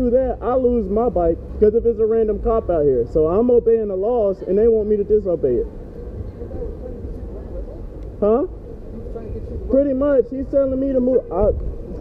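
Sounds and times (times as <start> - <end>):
city street traffic rumble: 0.0 - 12.0.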